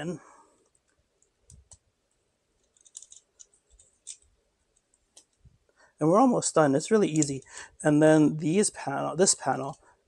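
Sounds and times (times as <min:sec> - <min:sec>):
plastic toy parts clicking: 0:02.6 - 0:05.4.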